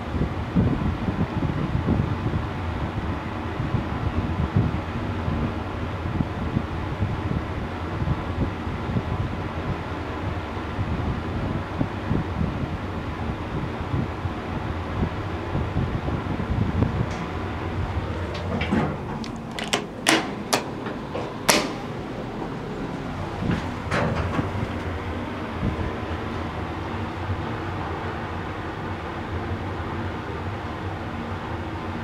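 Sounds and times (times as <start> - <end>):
elevator low rumble: 0.0 - 32.0
elevator clicks: 16.8 - 22.6, 23.2 - 25.2.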